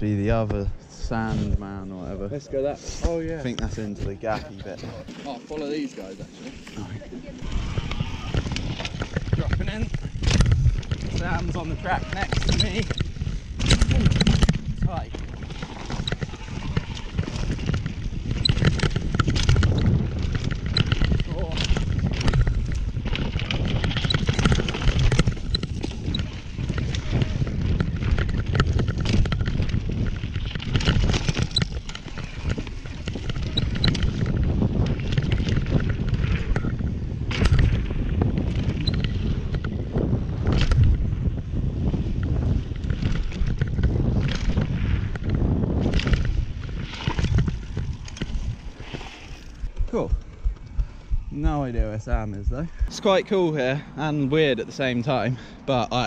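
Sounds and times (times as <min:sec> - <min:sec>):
bike tyres on dirt: 0:01.2 - 0:56.0
bike chain and frame rattling: 0:03.8 - 0:53.2
wind on microphone: 0:06.2 - 0:56.0.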